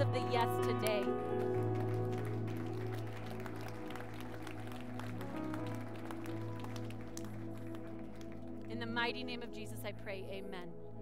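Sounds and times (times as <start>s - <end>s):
congregation hand claps: 0.0s - 8.8s
soft sustained keyboard chords: 0.0s - 11.0s.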